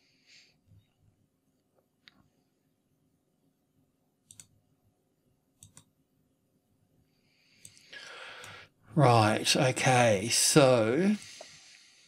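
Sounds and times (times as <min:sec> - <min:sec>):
computer mouse clicking: 0:04.2 - 0:04.6, 0:05.6 - 0:05.9.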